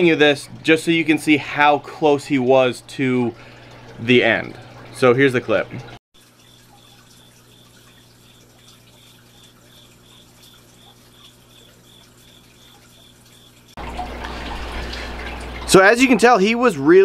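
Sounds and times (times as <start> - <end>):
water trickling: 0.0 - 17.0.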